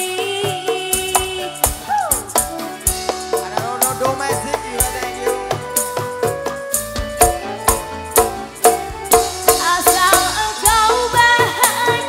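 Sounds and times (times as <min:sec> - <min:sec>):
woman singing: 0:00.0 - 0:02.6, 0:09.4 - 0:12.0
hand drums: 0:00.0 - 0:12.0
keyboard chords: 0:00.0 - 0:12.0.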